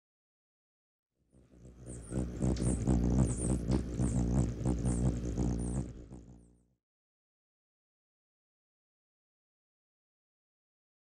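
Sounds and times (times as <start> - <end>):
hummingbird wings humming: 1.4 - 6.6.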